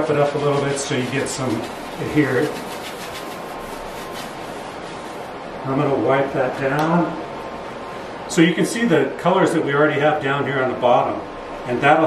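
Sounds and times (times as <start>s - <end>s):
sanding block rasping: 0.0s - 5.2s.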